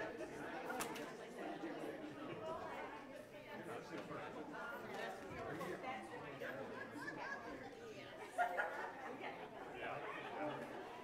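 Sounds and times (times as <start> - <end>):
crowd chatter in large hall: 0.0 - 11.0.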